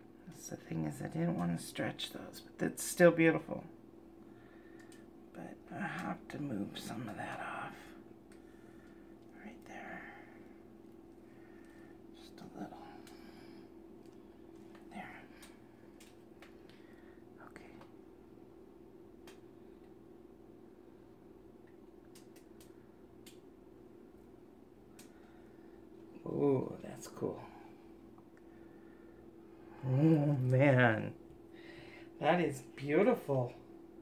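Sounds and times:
low hum: 0.0 - 34.0
faint clicks: 4.7 - 5.1, 21.6 - 23.5
person whispering: 5.4 - 8.0, 9.3 - 10.4, 14.9 - 15.5, 17.4 - 17.9.

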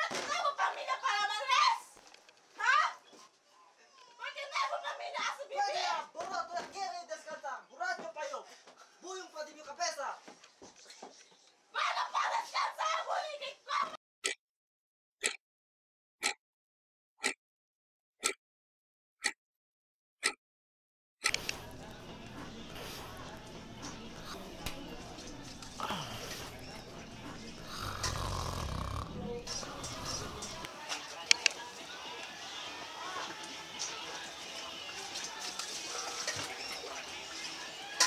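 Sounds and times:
person snoring: 22.6 - 30.7.

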